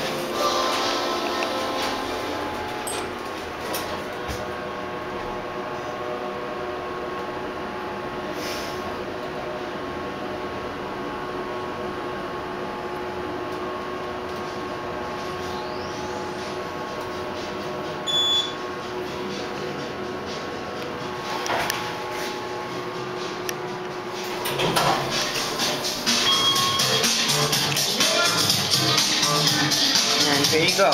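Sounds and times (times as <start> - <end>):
elevator doors sliding open: 0.0 - 4.5, 24.1 - 27.3
elevator hum and hiss: 0.0 - 9.7, 11.5 - 30.5.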